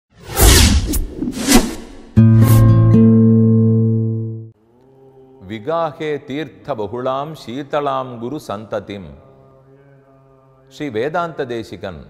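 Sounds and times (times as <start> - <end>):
quick swooshes: 0.2 - 2.7.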